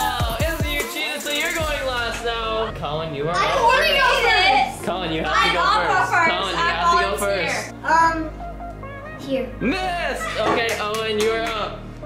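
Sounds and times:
children talking: 3.2 - 8.3.

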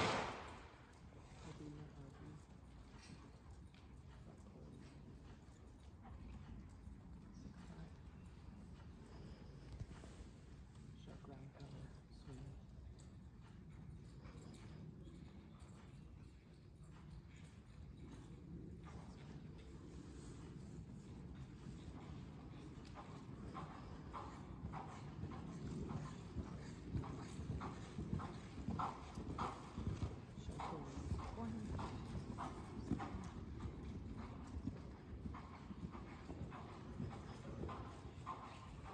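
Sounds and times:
muffled horse hoofbeats on soft ground: 0.8 - 38.9.

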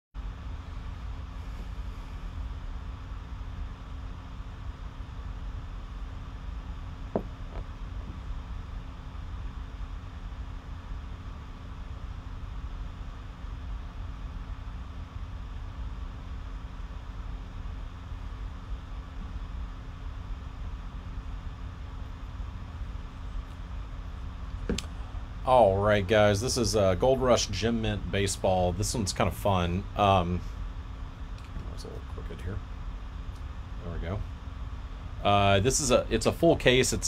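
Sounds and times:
faint hum: 0.2 - 37.0
low background rumble: 0.2 - 37.0.

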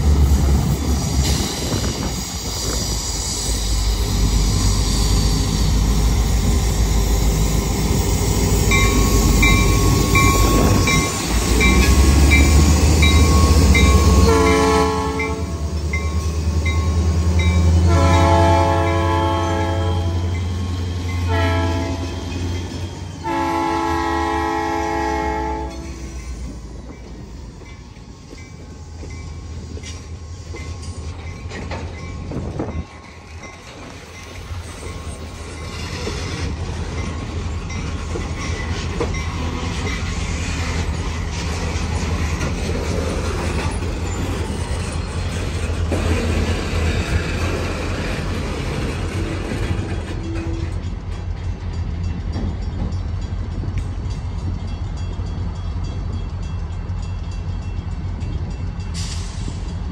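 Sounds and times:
train wheels clacking: 0.0 - 24.3, 25.5 - 59.9
diesel locomotive engines rumbling: 0.0 - 59.9
railcar clunk: 0.0 - 59.9
locomotive bell ringing: 2.3 - 42.2, 49.7 - 59.9
train horn blasts: 14.0 - 15.7, 17.8 - 20.4, 21.2 - 22.3, 23.2 - 26.1.

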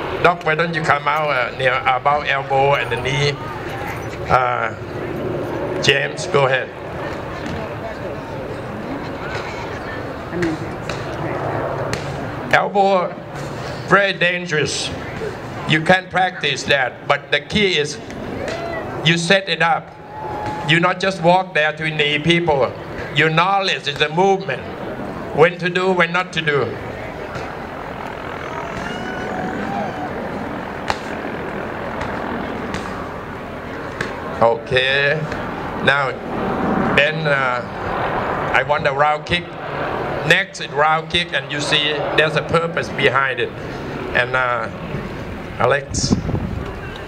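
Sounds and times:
faint distant voices: 0.0 - 36.4
crowd chatter: 0.0 - 47.0.

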